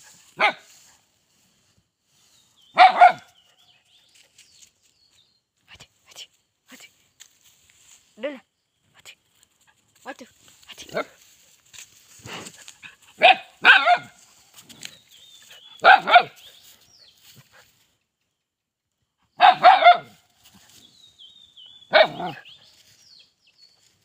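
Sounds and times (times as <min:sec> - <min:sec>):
small dog barking: 0:00.4 - 0:00.7, 0:02.7 - 0:03.4, 0:13.2 - 0:14.2, 0:15.8 - 0:16.4, 0:19.4 - 0:20.2, 0:21.9 - 0:22.5.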